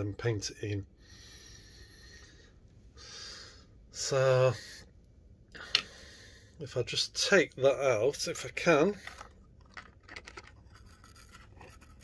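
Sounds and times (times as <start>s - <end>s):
faint breath: 0.9s - 3.8s, 4.5s - 6.6s.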